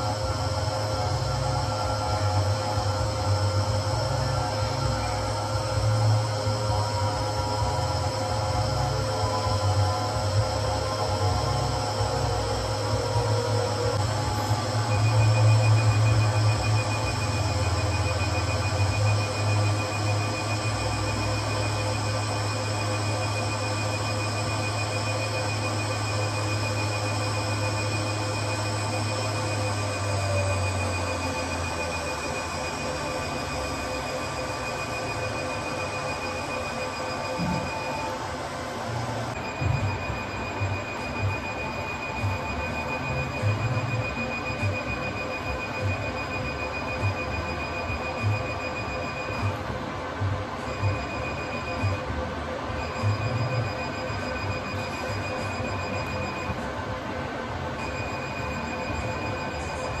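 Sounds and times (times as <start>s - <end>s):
high-pitched beeping: 0.0s - 38.4s, 39.3s - 49.7s, 50.6s - 56.7s, 57.8s - 60.0s
machine hum: 0.0s - 60.0s.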